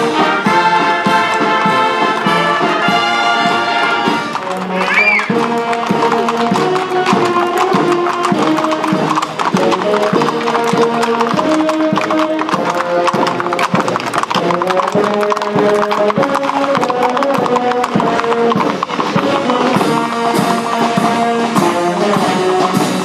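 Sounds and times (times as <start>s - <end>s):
brass marching band playing: 0.0s - 23.0s
horse hooves clopping on pavement: 0.0s - 23.0s.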